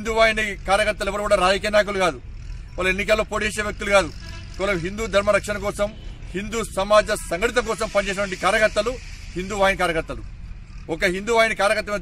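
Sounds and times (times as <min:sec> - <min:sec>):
man speaking: 0:02.8 - 0:12.0.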